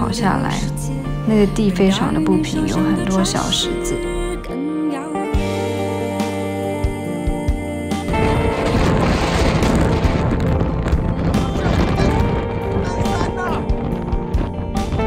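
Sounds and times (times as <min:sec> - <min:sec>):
music with long held notes: 0:00.0 - 0:15.0
wind buffeting microphone: 0:08.1 - 0:15.0.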